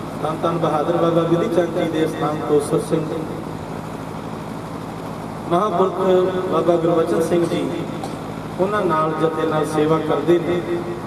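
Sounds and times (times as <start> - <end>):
electric fan whooshing: 0.0 - 11.0.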